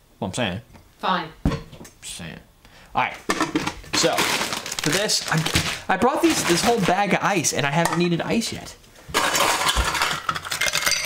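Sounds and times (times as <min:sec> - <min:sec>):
ice cubes rattling into glass: 0:09.2 - 0:11.0.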